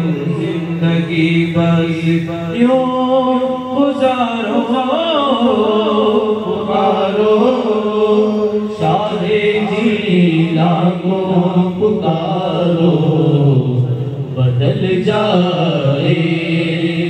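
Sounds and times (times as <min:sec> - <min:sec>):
men singing a chant: 0:00.0 - 0:17.0.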